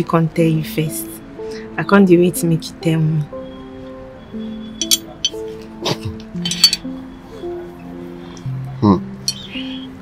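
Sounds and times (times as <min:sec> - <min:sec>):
slow film background music: 0:00.0 - 0:10.0.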